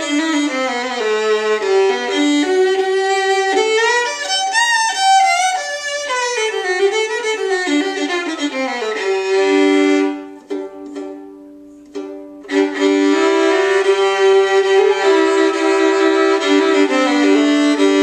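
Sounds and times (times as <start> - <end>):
violin bowed double stops: 0.0 - 18.0.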